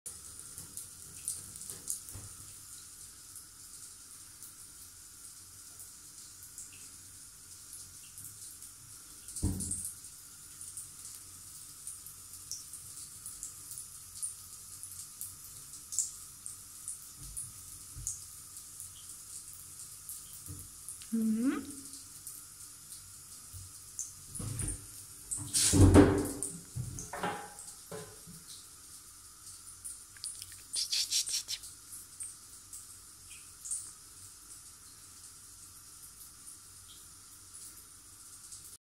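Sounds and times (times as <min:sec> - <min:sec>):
water trickling in a bathtub: 0:00.1 - 0:38.8.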